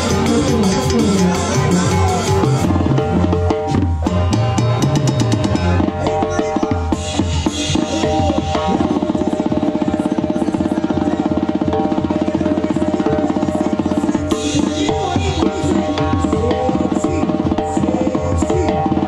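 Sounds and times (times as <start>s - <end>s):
live band music: 0.0s - 19.0s.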